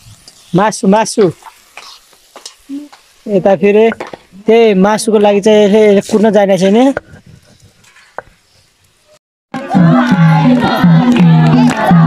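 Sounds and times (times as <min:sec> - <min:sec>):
food sizzling in a pan: 0:00.0 - 0:07.0.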